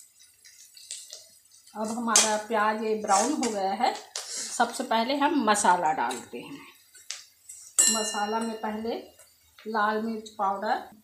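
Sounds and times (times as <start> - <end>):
woman speaking: 1.8 - 6.7, 7.9 - 11.0.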